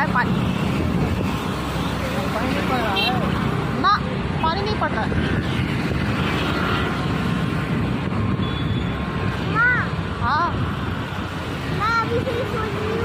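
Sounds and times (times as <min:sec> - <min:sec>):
city traffic: 0:00.0 - 0:13.0
motorbike engine and road noise: 0:00.0 - 0:13.0
wind on microphone: 0:00.2 - 0:01.8, 0:04.8 - 0:13.0.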